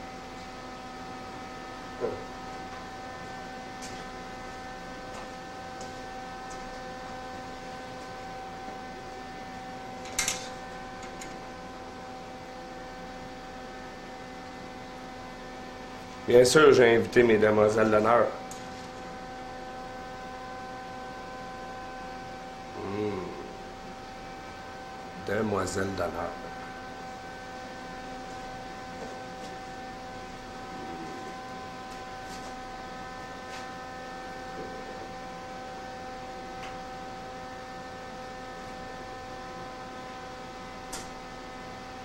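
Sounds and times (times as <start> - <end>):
electrical hum with hiss: 0.0 - 42.0.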